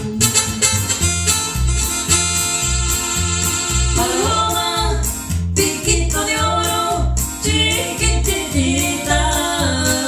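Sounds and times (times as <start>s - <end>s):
electric bass guitar: 0.0s - 10.0s.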